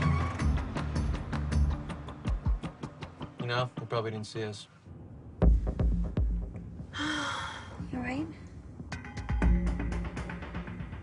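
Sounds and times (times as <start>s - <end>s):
low background music: 0.0s - 4.5s, 5.2s - 11.0s
person gasping: 6.9s - 7.8s.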